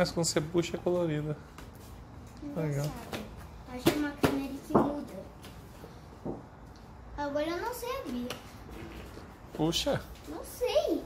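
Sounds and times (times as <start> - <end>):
child voice sounds: 10.3 - 11.0.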